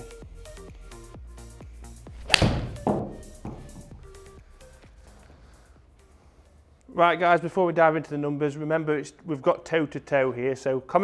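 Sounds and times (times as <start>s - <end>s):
background music with steady beat: 0.0s - 7.5s
golf club striking ball: 2.2s - 4.2s.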